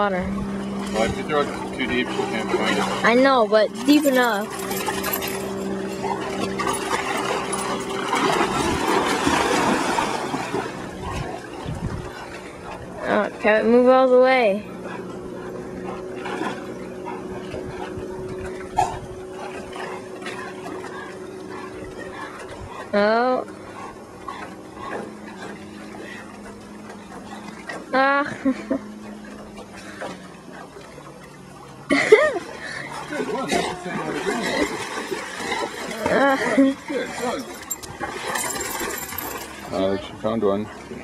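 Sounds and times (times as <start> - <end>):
dogs splashing through water: 0.2 - 41.0
dog splashing in shallow water: 0.5 - 13.2, 32.4 - 39.8
people talking: 1.0 - 4.5, 13.0 - 14.6, 23.0 - 23.4, 28.0 - 28.3, 35.9 - 37.5.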